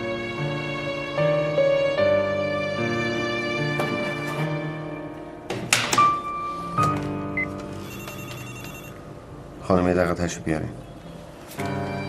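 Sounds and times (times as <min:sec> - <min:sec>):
sustained music underscore: 0:00.0 - 0:12.0
electronic phone tone: 0:07.4 - 0:09.0.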